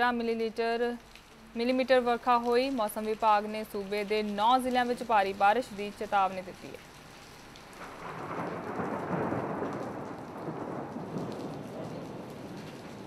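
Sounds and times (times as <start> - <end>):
rain falling: 0.0 - 13.0
thunder rolling: 7.8 - 13.0.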